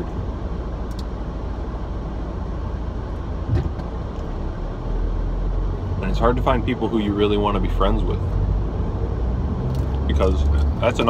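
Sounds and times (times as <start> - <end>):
car engine cabin rumble: 0.0 - 11.0.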